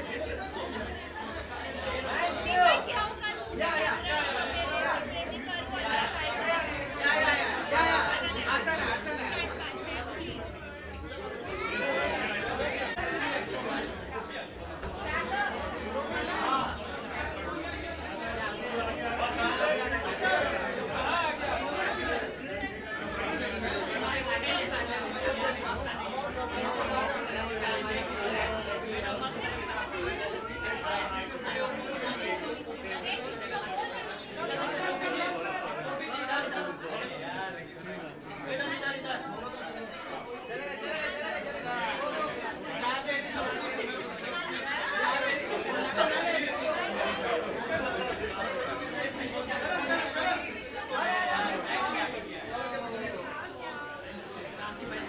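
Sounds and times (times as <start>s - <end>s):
overlapping chatter of people: 0.0s - 55.0s.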